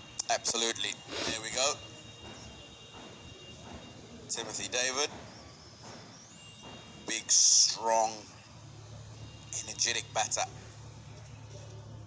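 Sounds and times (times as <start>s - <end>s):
broadcast background ambience: 0.0s - 12.0s.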